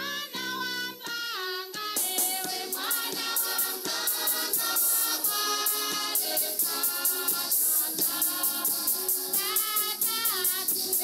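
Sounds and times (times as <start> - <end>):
choir singing a hymn: 1.4 - 11.0.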